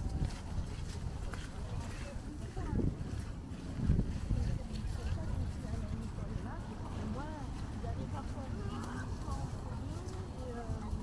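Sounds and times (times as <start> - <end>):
faint talk of passers-by: 0.0 - 11.0
wind rumble on microphone: 0.0 - 11.0.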